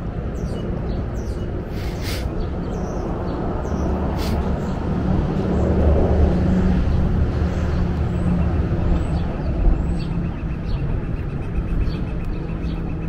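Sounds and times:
engine hum and rumble: 0.0 - 13.0.

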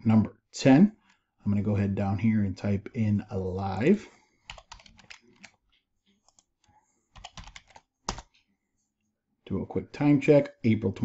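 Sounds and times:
computer keyboard typing: 4.5 - 5.6, 7.1 - 8.4.

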